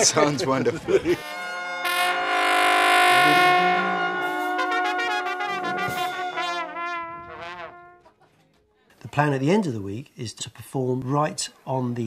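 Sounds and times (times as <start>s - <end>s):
brass ensemble playing: 1.1s - 8.1s.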